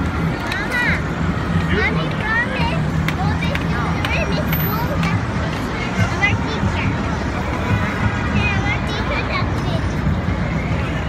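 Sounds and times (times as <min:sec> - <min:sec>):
passers-by talking: 0:00.0 - 0:11.0
traffic hum: 0:00.0 - 0:11.0.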